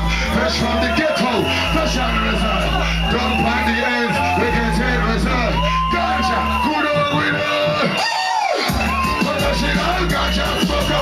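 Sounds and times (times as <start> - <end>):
crowd cheering: 0.0 - 11.0
loud drum and bass music: 0.0 - 11.0.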